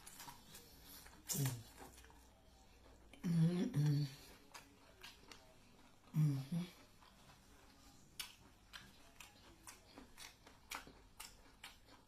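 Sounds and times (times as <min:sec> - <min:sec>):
person chewing with mouth clicks: 0:00.0 - 0:12.0.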